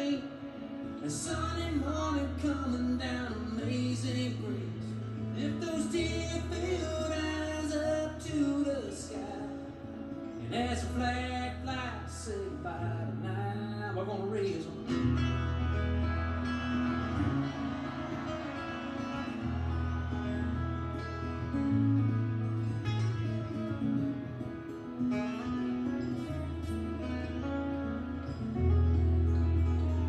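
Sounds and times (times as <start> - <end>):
acoustic guitars strumming: 0.0 - 30.0
bass notes: 26.2 - 30.0.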